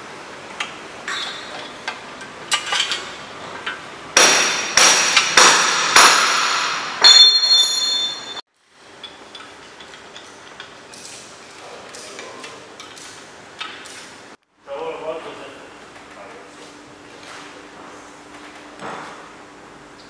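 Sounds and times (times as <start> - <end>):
sharp metallic clanks: 1.0 - 8.4.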